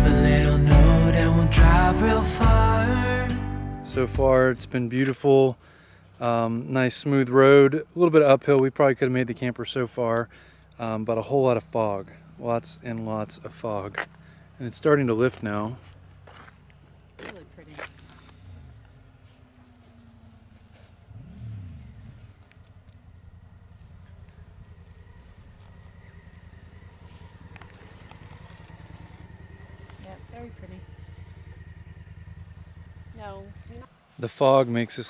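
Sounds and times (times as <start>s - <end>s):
engine idling: 10.2s - 14.7s, 15.3s - 34.1s.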